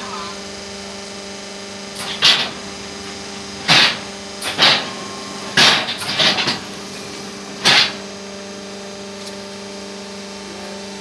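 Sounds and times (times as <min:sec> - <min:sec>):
harsh machine noise bursts: 0:00.0 - 0:09.2
hydraulic machine hum: 0:00.0 - 0:11.0.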